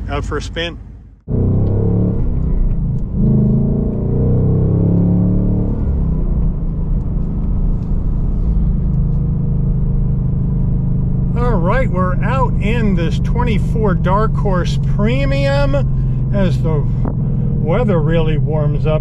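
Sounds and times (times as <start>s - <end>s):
car engine from inside cabin: 1.2s - 19.0s.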